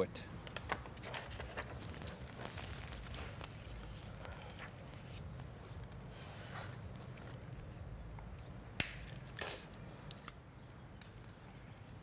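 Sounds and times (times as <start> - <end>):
adhesive tape tearing: 8.8 - 10.4
tape snapping: 8.8 - 11.4.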